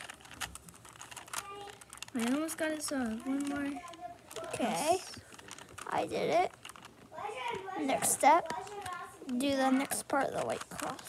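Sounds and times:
puzzle cube layers clicking: 0.0 - 7.1, 7.9 - 11.0.

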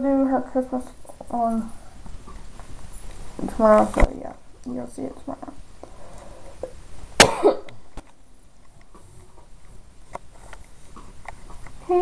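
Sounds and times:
person coughing: 7.2 - 7.7.

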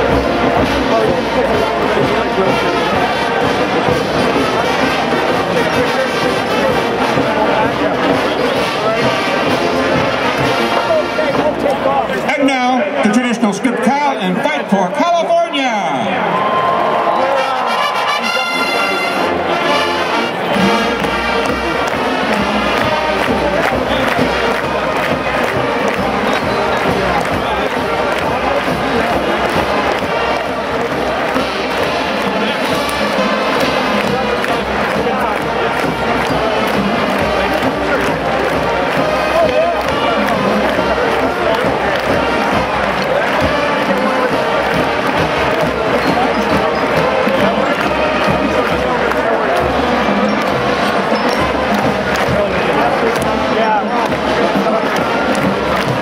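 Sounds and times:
marching band playing: 0.0 - 56.0.

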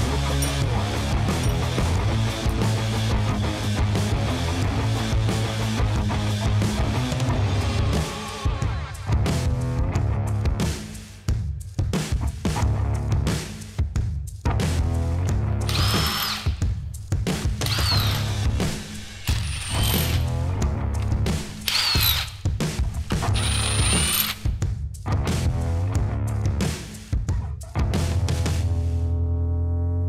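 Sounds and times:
rock music: 0.0 - 11.0, 14.5 - 28.8
cordless drill driving bolts: 15.7 - 16.6, 17.6 - 20.3, 21.0 - 24.5.

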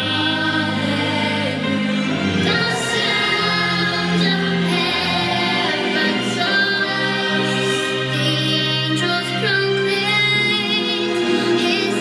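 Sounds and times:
christmas song with choir: 0.0 - 12.0.

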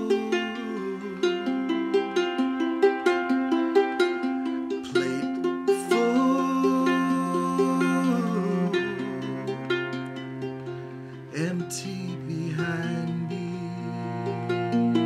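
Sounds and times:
ukulele plucking: 0.0 - 15.0
bowed cello low notes: 4.9 - 15.0.

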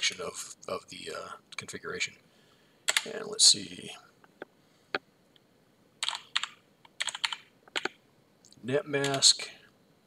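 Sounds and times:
computer keyboard typing: 2.9 - 3.2, 6.0 - 8.0, 9.0 - 9.3.

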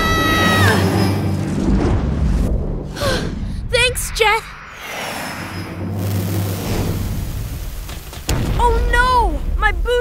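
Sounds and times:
jet thrusters rushing: 3.7 - 7.8.

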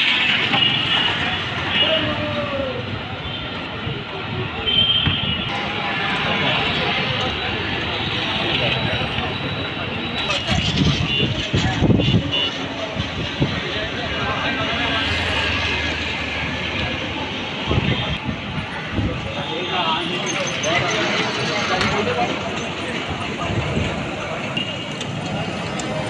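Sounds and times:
vehicles passing: 0.0 - 4.6, 5.3 - 26.0
people talking: 0.0 - 26.0.

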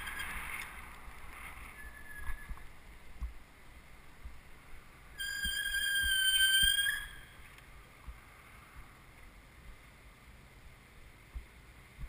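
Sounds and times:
bicycle brakes squealing: 0.0 - 0.5, 1.7 - 2.6, 5.2 - 7.4
low road and wind rumble: 0.0 - 12.0.

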